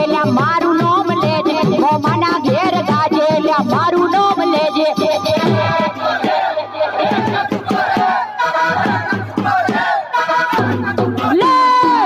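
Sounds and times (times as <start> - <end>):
live dance music: 0.0 - 12.0
crowd shouting: 5.4 - 12.0.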